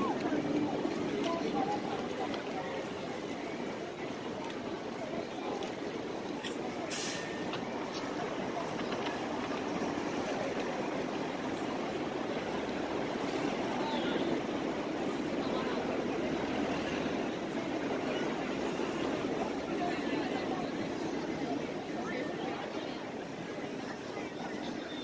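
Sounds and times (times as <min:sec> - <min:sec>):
street voices: 0:00.0 - 0:25.0
train rumbling overhead: 0:00.0 - 0:25.0.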